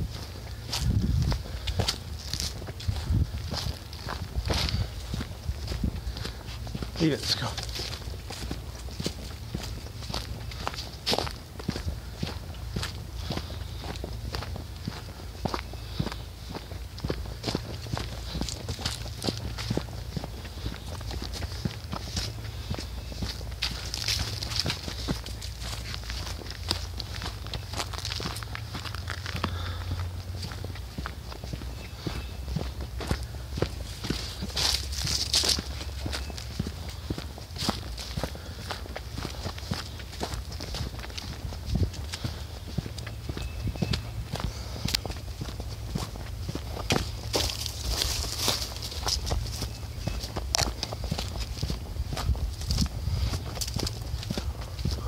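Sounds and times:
footsteps crunching dry leaves: 0.0s - 55.0s
steady low rumble: 0.0s - 55.0s.

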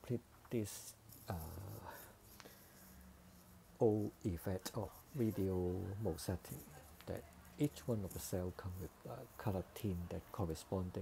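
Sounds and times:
faint steady hum: 0.0s - 11.0s
man saying uh: 0.1s - 2.0s, 3.8s - 11.0s.

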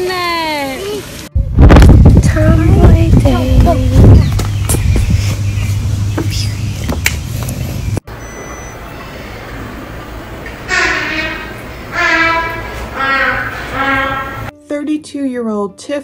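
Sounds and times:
wind buffeting microphone: 1.4s - 7.9s
held pitched tones: 8.0s - 14.5s.

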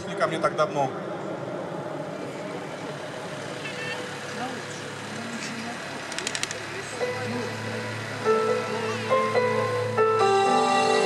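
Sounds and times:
stadium crowd murmur: 0.0s - 10.0s
sharp clicks: 6.1s - 6.7s
held synthesizer chord: 7.0s - 11.0s.

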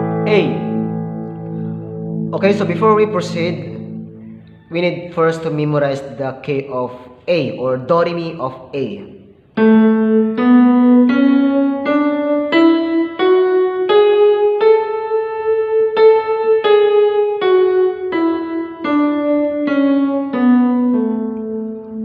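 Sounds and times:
keyboard playing a scale: 0.0s - 6.0s, 9.5s - 22.0s.

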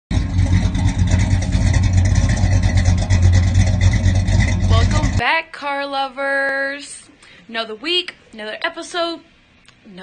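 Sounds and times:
car engine rumbling: 0.1s - 5.2s.

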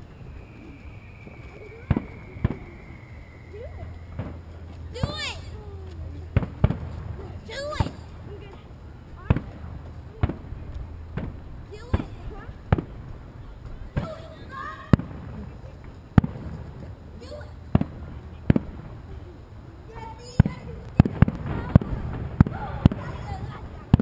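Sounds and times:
fireworks bangs: 0.0s - 5.6s, 6.3s - 8.3s, 9.2s - 19.1s, 20.0s - 24.0s
fireworks whistling: 0.0s - 5.6s.

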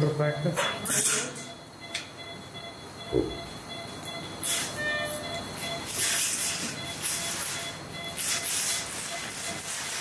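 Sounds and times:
faint steady high tones: 1.3s - 9.6s.

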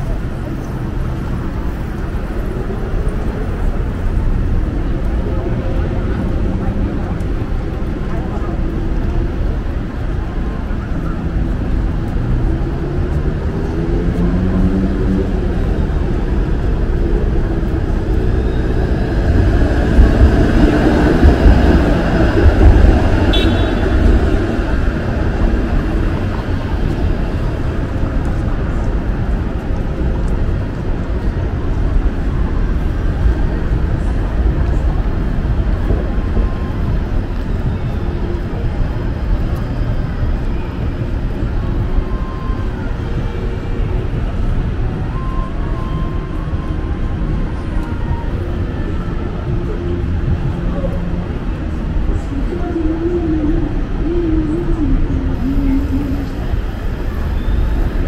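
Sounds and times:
indistinct voices: 0.0s - 58.0s
traffic rumble: 0.0s - 58.0s.

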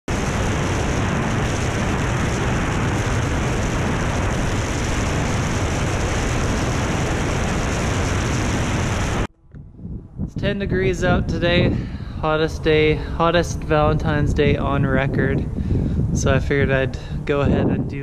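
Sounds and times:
aircraft engine noise: 0.0s - 18.0s
rushing airflow: 0.1s - 18.0s.

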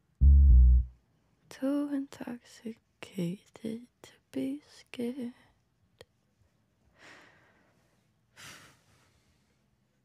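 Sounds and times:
person breathing: 7.0s - 9.5s.

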